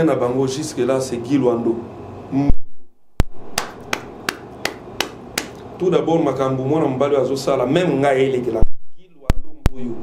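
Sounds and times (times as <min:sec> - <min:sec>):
man clapping hands: 0:03.5 - 0:05.6.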